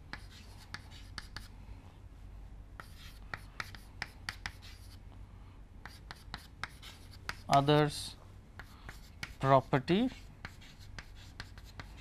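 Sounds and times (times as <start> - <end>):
chalk tapping and scratching: 0.1 - 1.5, 2.8 - 5.0, 5.8 - 12.0.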